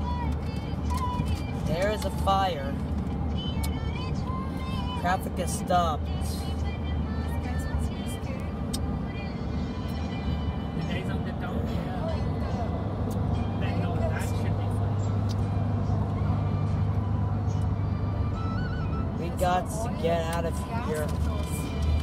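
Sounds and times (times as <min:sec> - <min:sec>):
car engine and road drone: 0:00.0 - 0:22.0.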